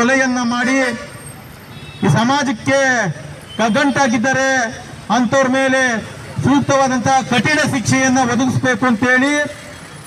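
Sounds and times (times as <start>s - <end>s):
man speaking into microphone: 0.0s - 1.2s, 2.0s - 9.7s
street traffic noise: 0.0s - 10.0s.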